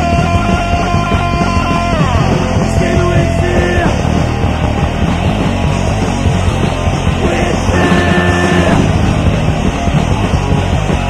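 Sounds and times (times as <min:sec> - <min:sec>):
hardcore punk music: 0:00.0 - 0:11.0.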